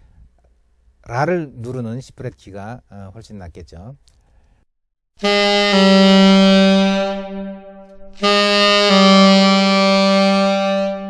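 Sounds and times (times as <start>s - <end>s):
tenor saxophone note: 5.2s - 11.0s.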